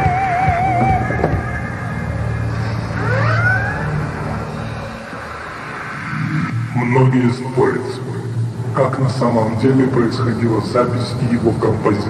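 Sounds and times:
siren-like rising pitch glides: 0:00.0 - 0:08.4
electronic low drone: 0:00.0 - 0:12.0.

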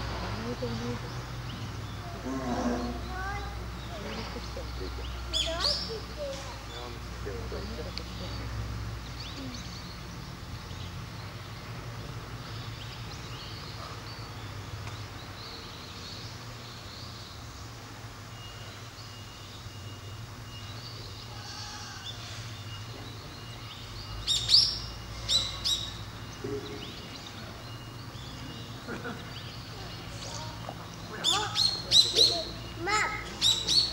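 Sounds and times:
birds chirping: 0:00.0 - 0:33.9
loud sharp bird calls: 0:00.0 - 0:33.9.

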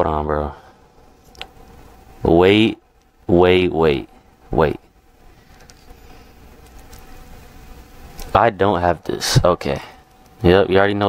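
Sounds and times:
faint buzzing hum: 0:00.0 - 0:11.0
low hiss: 0:00.0 - 0:11.0.

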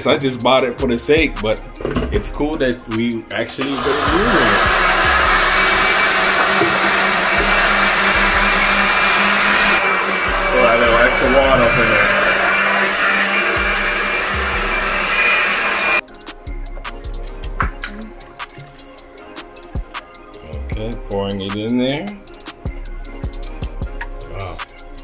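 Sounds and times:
electric blender running: 0:03.6 - 0:16.0.

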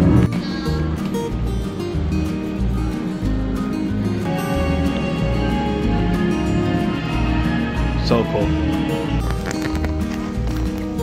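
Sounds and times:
lively instrumental music: 0:00.0 - 0:11.0.

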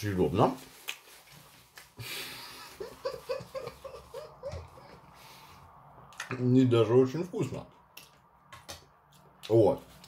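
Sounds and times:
soft chuckle: 0:02.1 - 0:05.1.

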